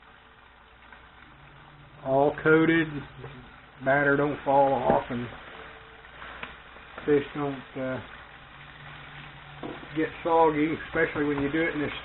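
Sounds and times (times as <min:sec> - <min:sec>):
fish frying in hot oil: 0:00.0 - 0:12.0
low steady hum: 0:00.0 - 0:12.0.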